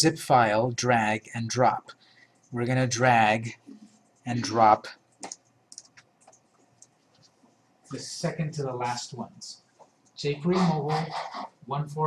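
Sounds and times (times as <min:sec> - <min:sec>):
mouse and keyboard clicks: 0:05.2 - 0:07.0.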